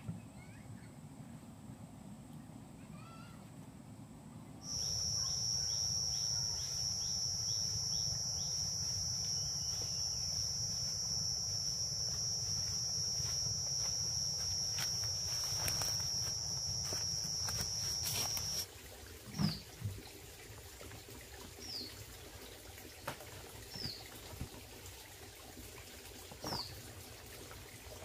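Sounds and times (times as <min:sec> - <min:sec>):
faint bird chirps: 0:04.6 - 0:18.6
cicadas droning: 0:04.6 - 0:18.7.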